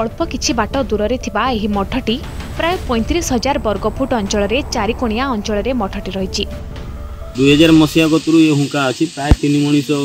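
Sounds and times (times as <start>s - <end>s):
steady high hiss: 2.1s - 10.0s
man speaking into microphone: 7.4s - 10.0s.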